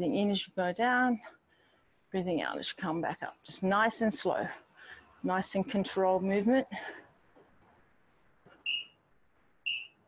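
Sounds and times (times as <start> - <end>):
short high whistle: 8.6 - 9.0, 9.7 - 10.0.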